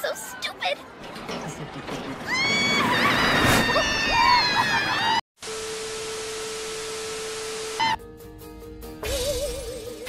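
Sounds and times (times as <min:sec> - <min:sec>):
roller coaster riders screaming: 0:01.7 - 0:05.2.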